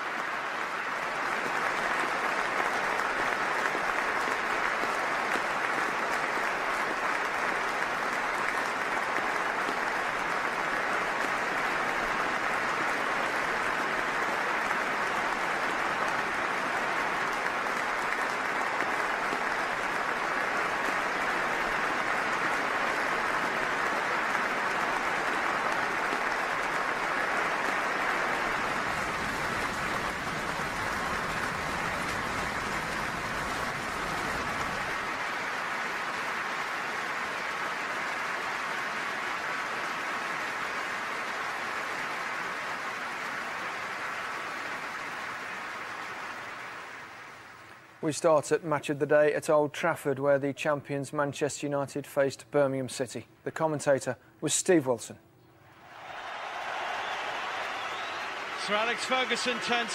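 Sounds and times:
stadium crowd applauding: 0:00.0 - 0:50.4, 0:55.6 - 0:59.9.

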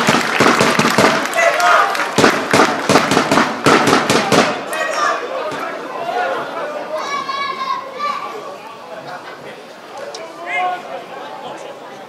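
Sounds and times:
crowd applause: 0:00.0 - 0:07.8.

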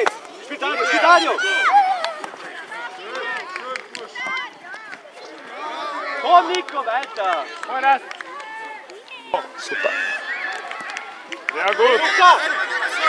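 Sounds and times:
children shouting: 0:00.6 - 0:03.5, 0:04.1 - 0:06.6, 0:08.2 - 0:13.0.

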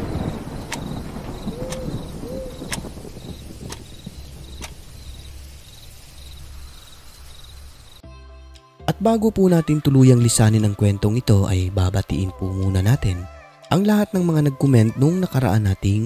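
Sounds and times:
crickets chirping: 0:00.0 - 0:08.0
faint ticking: 0:00.0 - 0:08.0
low rumble: 0:00.0 - 0:08.0
owl hooting: 0:01.4 - 0:02.8.

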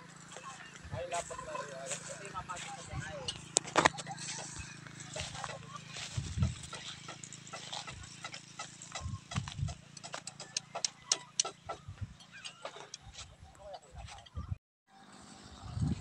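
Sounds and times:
footsteps on grass: 0:00.0 - 0:10.2.

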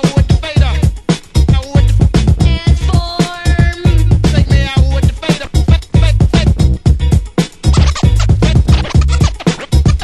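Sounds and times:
dance music with heavy bass: 0:00.0 - 0:10.0
turntable scratching: 0:00.0 - 0:10.0.

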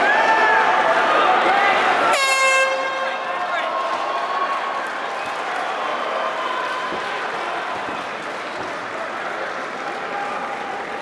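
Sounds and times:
air horn blast: 0:02.1 - 0:03.1.

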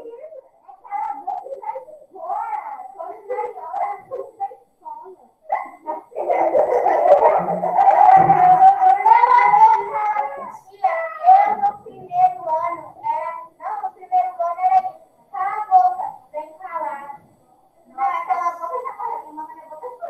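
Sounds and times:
children talking and vocalising: 0:00.0 - 0:20.0
child singing loudly: 0:07.9 - 0:16.0.

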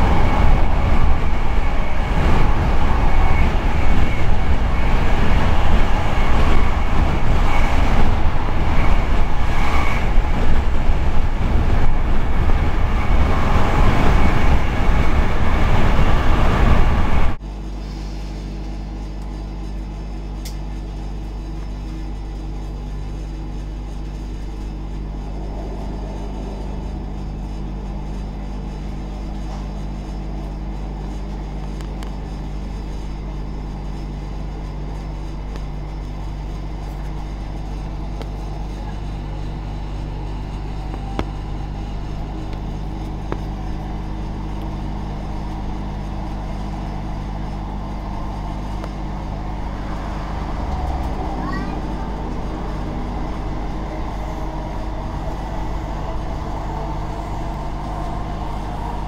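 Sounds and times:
train electric hum: 0:00.0 - 0:59.0
wheels rumbling on rails: 0:00.0 - 0:59.0.

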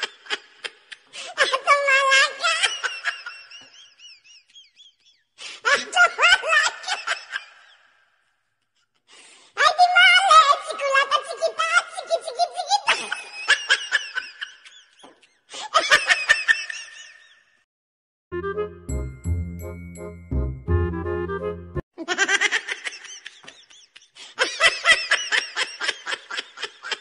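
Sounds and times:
people laughing: 0:12.8 - 0:17.4, 0:22.0 - 0:27.0
higher-pitched laughter: 0:22.0 - 0:27.0.

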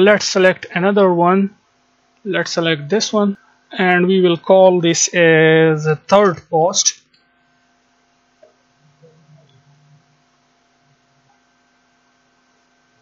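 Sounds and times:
faint recording hiss: 0:00.0 - 0:07.0
electrical hum: 0:00.0 - 0:13.0.

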